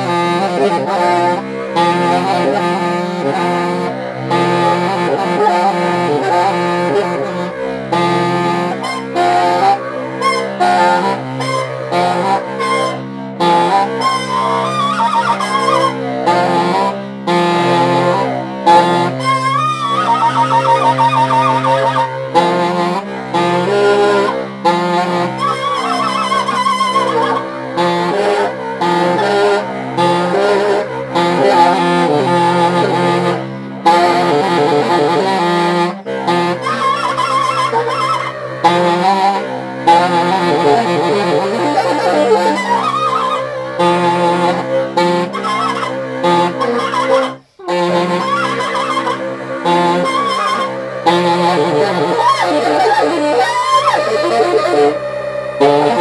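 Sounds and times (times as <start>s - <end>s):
baritone saxophone: 0.0s - 56.0s
tenor saxophone: 0.0s - 56.0s.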